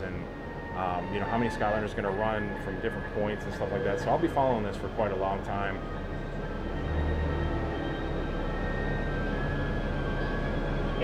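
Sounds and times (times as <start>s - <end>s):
bus engine rumble: 0.0s - 11.0s
faint high whine: 0.0s - 11.0s.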